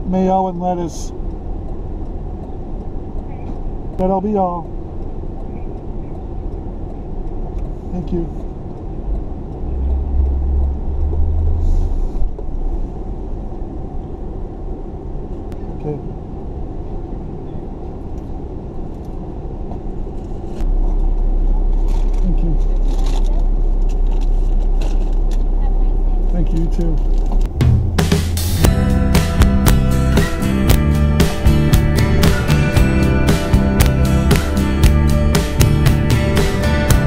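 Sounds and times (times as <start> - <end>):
car engine rumble from inside: 0.0 - 37.0.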